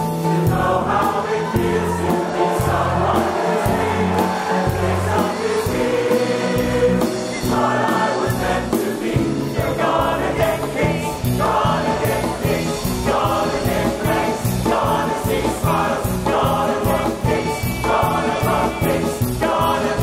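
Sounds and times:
instrumental accompaniment with steady beat: 0.0s - 20.0s
men's chorus singing: 0.0s - 20.0s.

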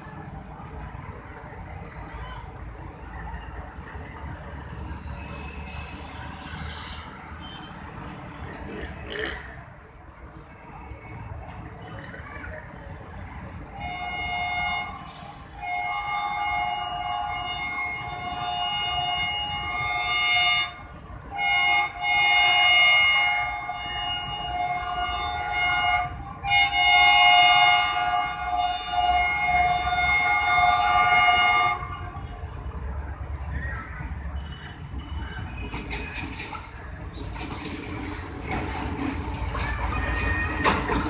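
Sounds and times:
locomotive horn blasts: 13.8s - 32.2s.

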